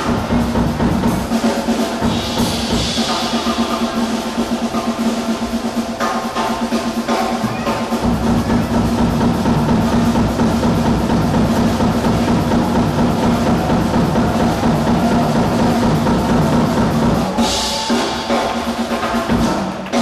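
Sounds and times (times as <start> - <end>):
busy drums: 0.0 - 20.0.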